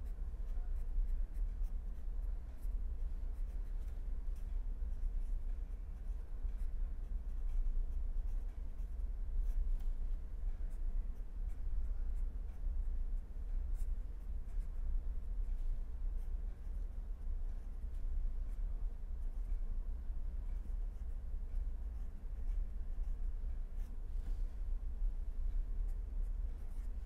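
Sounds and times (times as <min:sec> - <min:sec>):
pen scratching on paper: 0:00.0 - 0:12.9, 0:15.4 - 0:19.6, 0:20.3 - 0:24.0, 0:25.5 - 0:27.0
steady low hum: 0:00.0 - 0:27.0.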